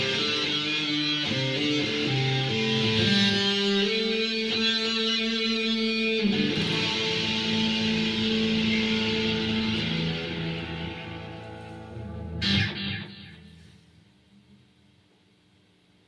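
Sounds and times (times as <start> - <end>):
electric guitar chords: 0.0 - 13.8.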